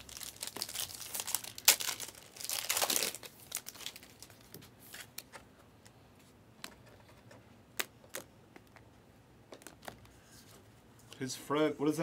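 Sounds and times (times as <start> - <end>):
foil wrapper tearing and crinkling: 0.0 - 4.4.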